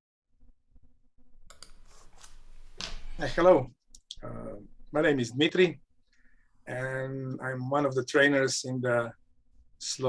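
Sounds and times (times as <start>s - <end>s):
soft hum: 0.7s - 10.0s
man speaking: 3.1s - 5.8s, 6.6s - 9.2s, 9.8s - 10.0s.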